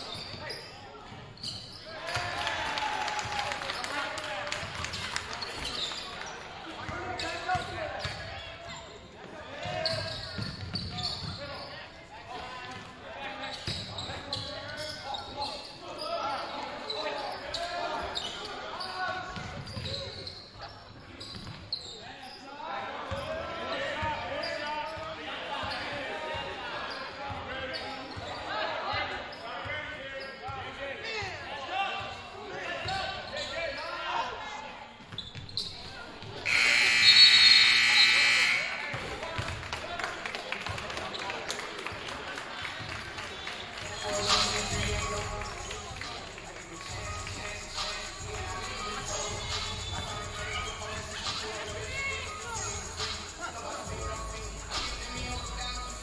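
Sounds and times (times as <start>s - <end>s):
players and spectators voices: 0.0s - 56.0s
scoreboard horn: 36.5s - 39.0s.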